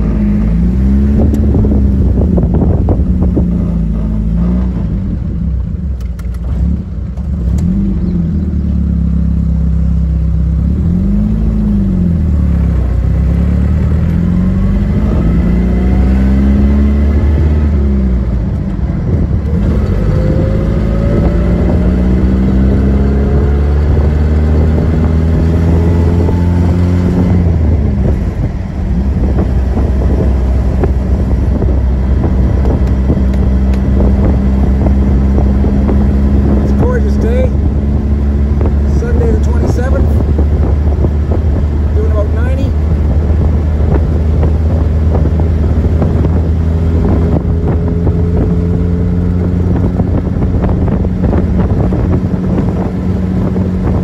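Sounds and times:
car engine running: 0:00.0 - 0:54.0.

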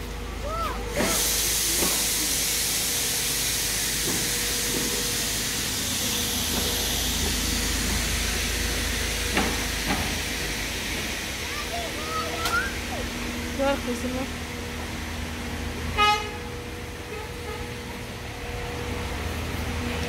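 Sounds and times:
loud steady hiss: 0:00.8 - 0:13.6.

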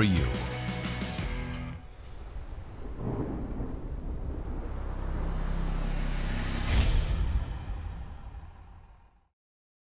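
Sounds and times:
deep thunder-like rumble: 0:02.3 - 0:08.5.

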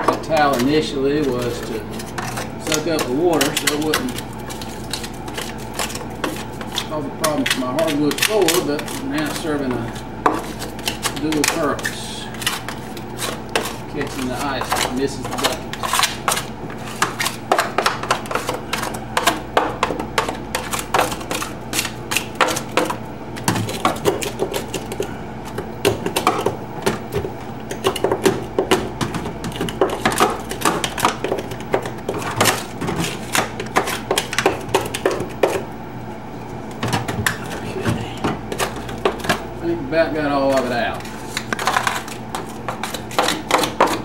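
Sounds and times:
steady low hum: 0:00.0 - 0:44.0
metal tool chipping ice: 0:00.2 - 0:22.9.

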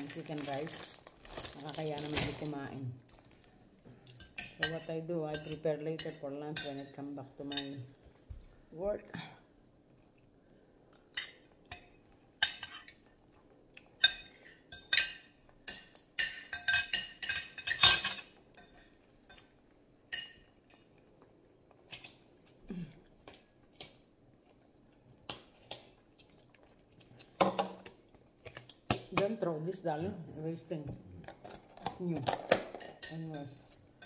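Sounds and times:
cutlery clinking on a dish: 0:14.0 - 0:20.9.

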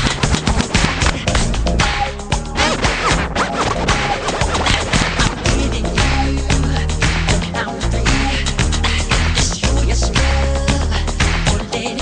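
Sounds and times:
music track playing: 0:00.0 - 0:12.0
record scratching: 0:02.4 - 0:06.3.

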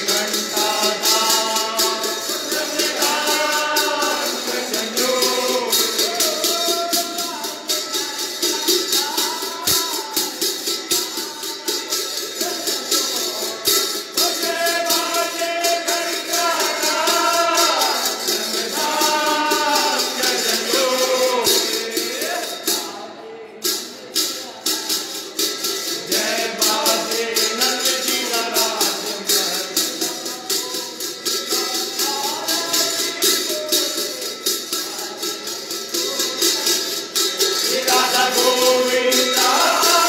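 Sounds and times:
devotional singing: 0:00.0 - 0:40.0
jingling metal percussion: 0:00.0 - 0:40.0.

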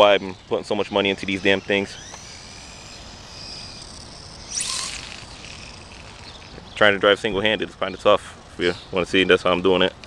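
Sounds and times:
rc car motor whine: 0:00.0 - 0:07.4.

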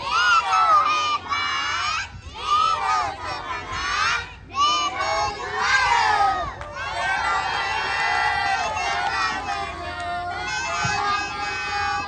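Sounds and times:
children shouting a cheer: 0:00.0 - 0:12.0.

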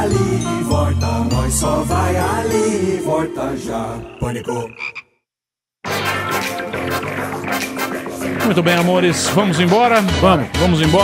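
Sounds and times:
music with voices: 0:00.0 - 0:04.8, 0:05.9 - 0:11.0.

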